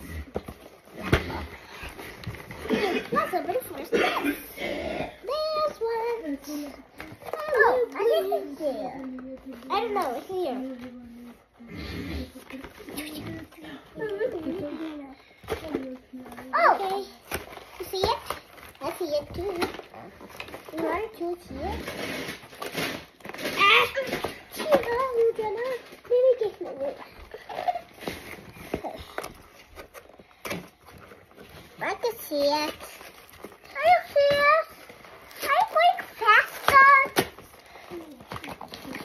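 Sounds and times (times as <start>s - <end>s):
young children's voices: 2.7s - 17.2s, 17.8s - 20.1s, 20.7s - 21.8s, 23.5s - 27.8s, 31.8s - 33.0s, 33.7s - 34.8s, 35.4s - 39.0s.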